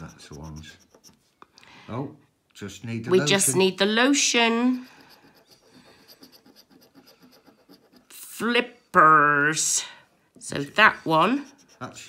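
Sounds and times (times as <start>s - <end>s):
coin scraping scratch card: 4.5s - 8.3s, 11.1s - 12.0s.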